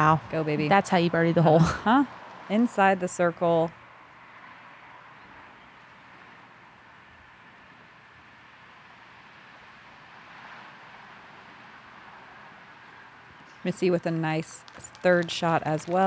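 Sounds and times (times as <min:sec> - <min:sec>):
faint outdoor hiss: 0:00.0 - 0:16.0.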